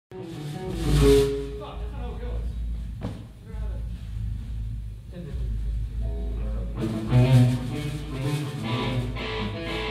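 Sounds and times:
held pitched note: 0.3 - 2.4
low rumble: 0.8 - 9.6.

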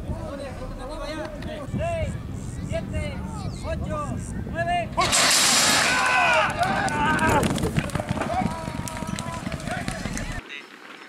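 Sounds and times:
metal starting gate crashing open: 5.0 - 6.2.

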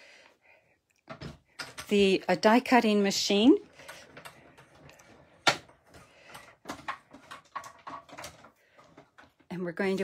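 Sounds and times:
plastic knocks and clicks: 1.0 - 1.9, 3.8 - 9.5.

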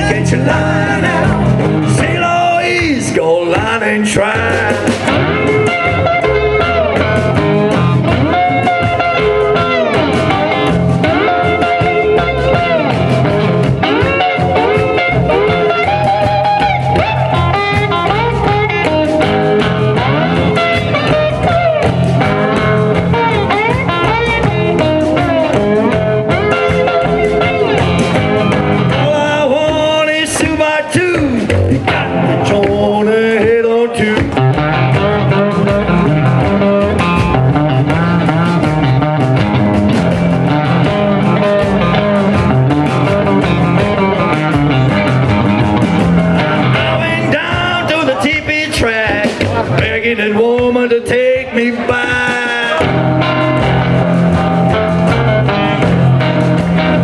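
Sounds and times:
double bass: 0.0 - 30.1, 31.2 - 57.0
blues electric guitar: 0.0 - 57.0
drum kit: 0.0 - 57.0.

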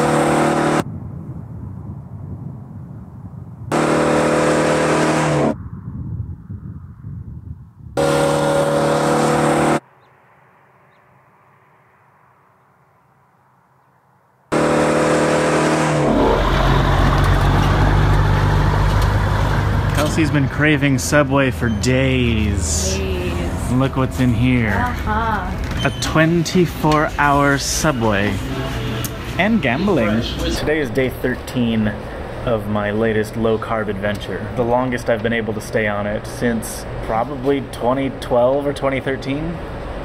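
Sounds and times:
truck engine drone: 0.0 - 1.4, 3.6 - 5.8, 8.0 - 13.7, 14.4 - 40.0
vehicle engine drone: 0.0 - 7.0, 7.9 - 40.0
road and wind noise: 0.0 - 40.0.

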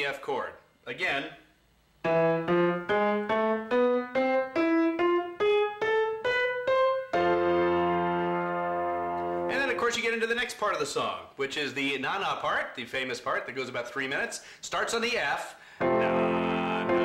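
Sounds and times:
held piano chord: 2.0 - 9.8, 15.8 - 17.0
piano rising run of notes: 2.0 - 9.9, 15.8 - 17.0.

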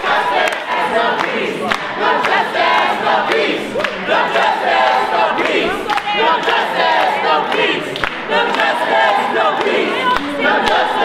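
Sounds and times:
crowd shouting and chanting: 0.0 - 11.0.

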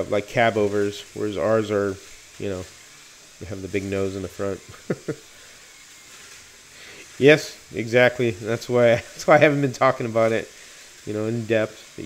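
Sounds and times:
faint hiss: 0.0 - 12.0
man laughing: 4.6 - 5.4.

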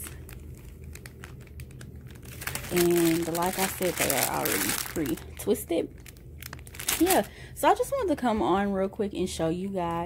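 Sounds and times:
plastic packaging crinkling: 0.0 - 7.5
low steady hum: 0.0 - 10.0.

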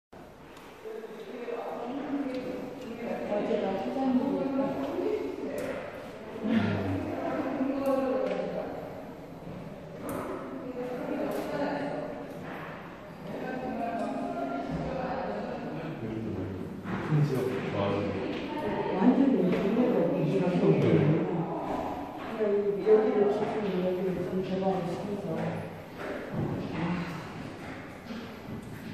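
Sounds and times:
people talking: 0.8 - 9.1, 10.1 - 12.6, 13.2 - 16.4, 17.0 - 25.7.

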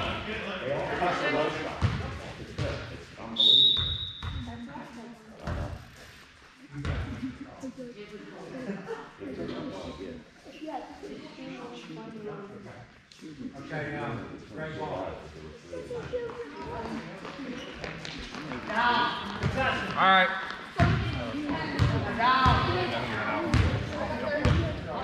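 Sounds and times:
voices echoing in hall: 0.0 - 25.0
referee's whistle blast: 3.4 - 4.2
basketball bouncing on wooden floor: 4.2 - 4.4, 24.4 - 24.7.

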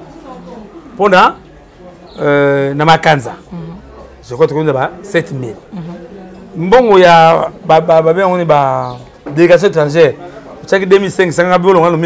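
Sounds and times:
man speaking: 2.1 - 12.0.

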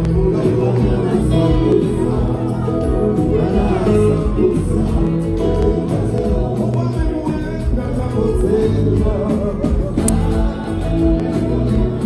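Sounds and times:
electric guitar: 0.0 - 12.0
live band music over pa: 0.0 - 12.0
man singing into a microphone: 0.0 - 12.0.

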